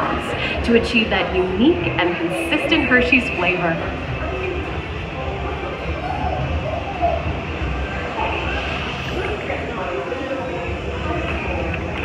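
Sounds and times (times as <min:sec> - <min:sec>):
faint voices: 0:00.0 - 0:12.0
ride car rumbling on track: 0:00.0 - 0:12.0.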